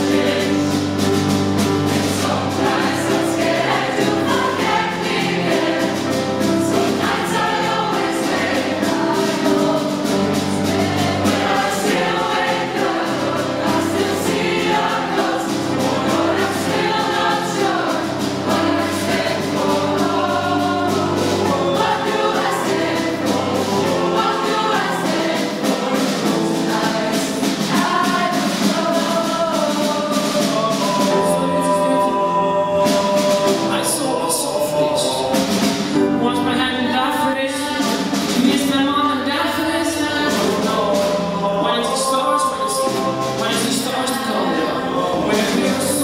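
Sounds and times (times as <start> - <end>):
mixed choir singing pop song: 0.0 - 46.0.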